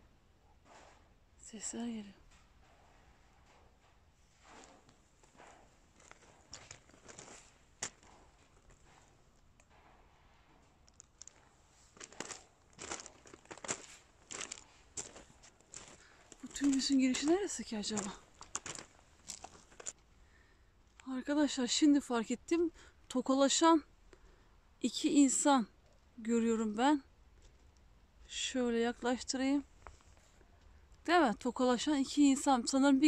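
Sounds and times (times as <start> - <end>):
faint outdoor hiss: 0.0 - 33.0
footsteps on gravelly dirt: 4.5 - 9.2, 11.0 - 20.0.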